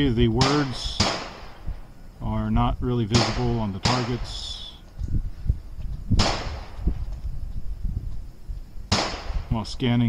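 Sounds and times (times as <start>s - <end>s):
gunshots: 0.4s - 1.6s, 3.1s - 4.7s, 6.2s - 6.8s, 8.9s - 9.5s.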